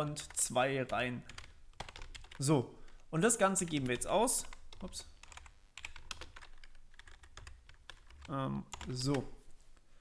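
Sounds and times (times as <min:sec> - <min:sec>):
computer keyboard typing: 0:00.2 - 0:09.3.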